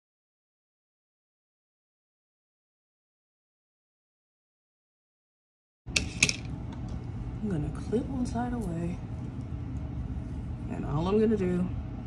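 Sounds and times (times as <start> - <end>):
steady low hum: 5.9 - 12.0.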